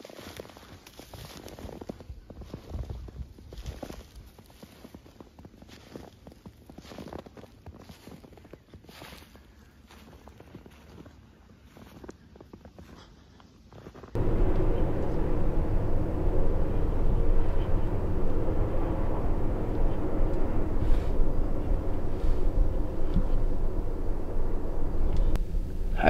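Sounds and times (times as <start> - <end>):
low engine-like drone: 14.2 - 26.0.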